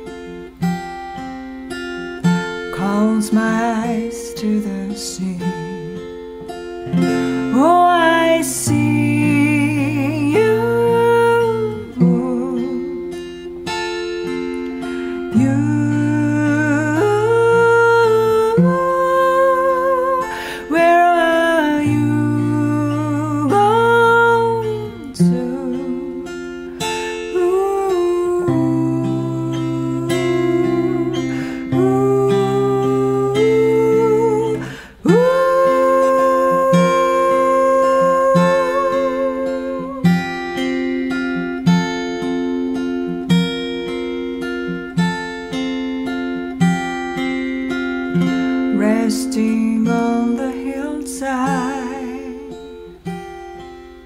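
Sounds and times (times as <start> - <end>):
acoustic guitar: 0.0 - 54.0
woman singing wordlessly: 2.4 - 13.5, 15.2 - 42.6, 48.1 - 53.1.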